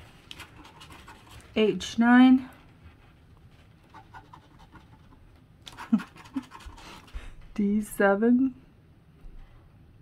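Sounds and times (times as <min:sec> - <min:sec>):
scraping scratch ticket coating: 0:03.8 - 0:07.1.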